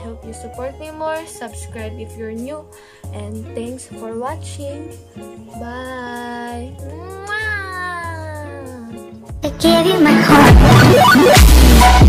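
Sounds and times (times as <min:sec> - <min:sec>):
soft background music: 0:00.0 - 0:11.3
girl's drawn-out vocal sound: 0:06.9 - 0:09.0.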